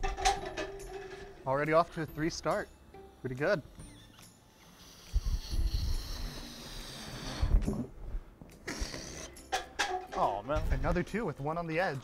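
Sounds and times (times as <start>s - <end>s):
air rushing out of balloon: 4.8s - 7.9s.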